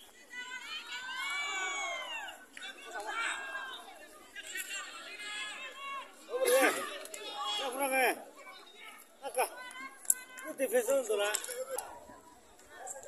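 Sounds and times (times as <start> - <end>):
spectators talking and calling out: 0.0 - 13.0.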